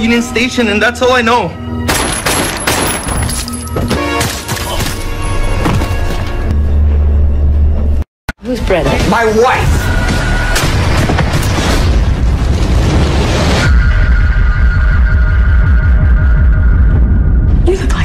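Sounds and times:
dramatic trailer music: 0.0s - 18.0s.

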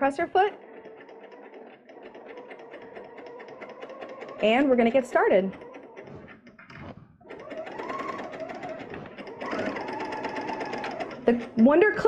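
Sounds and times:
serger motor stitching: 0.0s - 12.0s.

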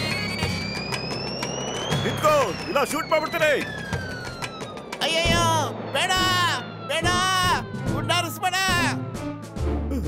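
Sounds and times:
rising whistling tone: 0.0s - 9.5s.

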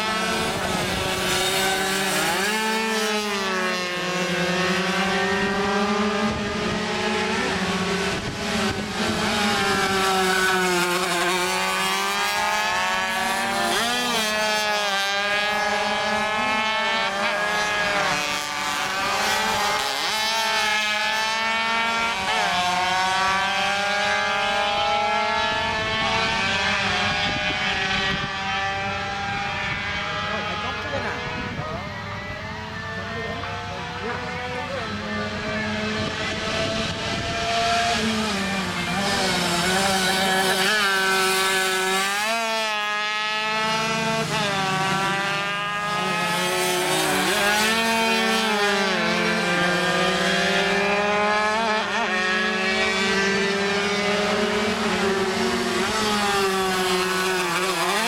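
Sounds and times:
racing motorcycle engines revving: 0.0s - 58.0s.

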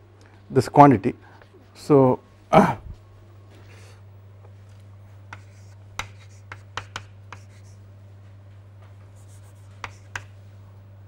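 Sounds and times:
steady low hum: 0.0s - 11.0s
chalk scratching: 5.3s - 7.8s, 9.1s - 10.4s
chalk tapping on chalkboard: 5.3s - 7.8s, 9.1s - 10.4s.

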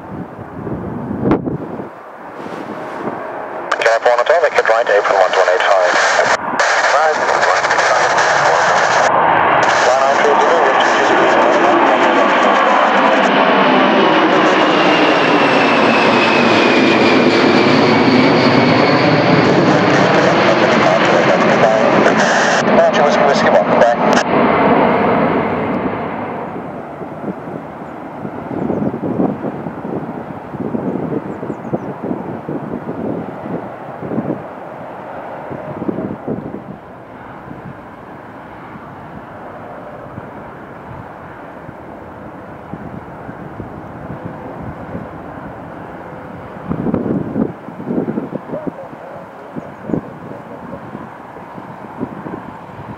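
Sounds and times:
jet aircraft roar: 0.0s - 52.9s
jet engine whine: 0.0s - 52.9s.

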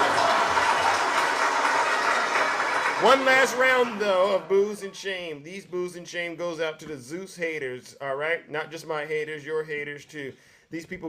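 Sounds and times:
many hands clapping: 0.0s - 4.8s.

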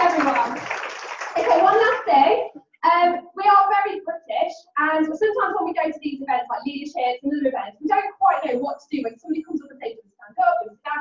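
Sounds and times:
woman speaking into a microphone: 0.0s - 0.6s, 1.4s - 11.0s.

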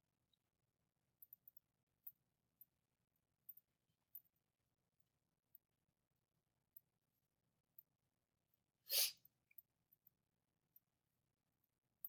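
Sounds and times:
sharp breath: 8.9s - 9.2s.

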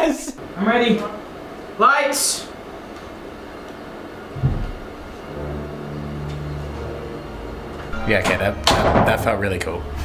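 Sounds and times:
steady low hum: 0.3s - 10.0s.

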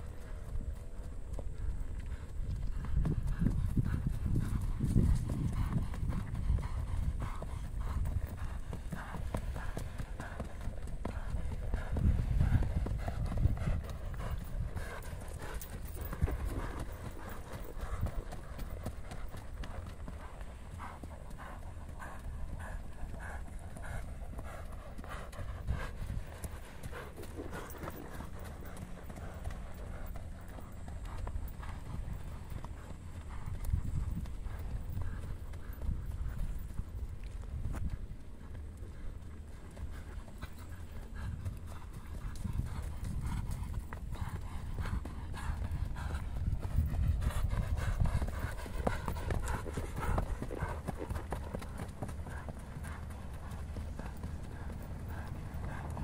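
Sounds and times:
horse hoofbeats on dirt: 0.0s - 56.0s.

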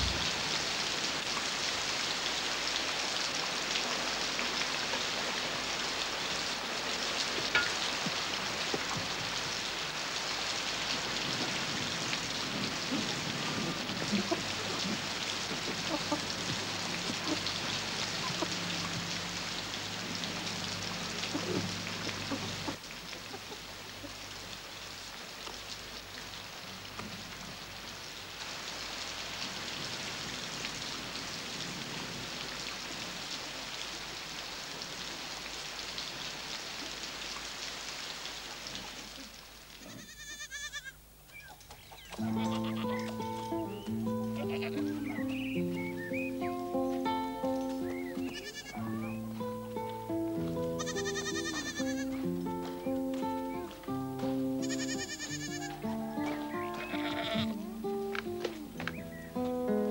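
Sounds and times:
steady rain: 0.0s - 59.9s
slow sustained chords music: 49.0s - 50.8s, 52.1s - 54.6s, 57.5s - 59.9s.

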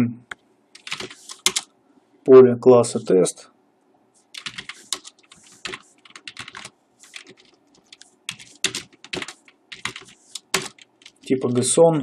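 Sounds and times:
typing on computer keyboard: 0.8s - 1.7s, 4.3s - 11.3s.

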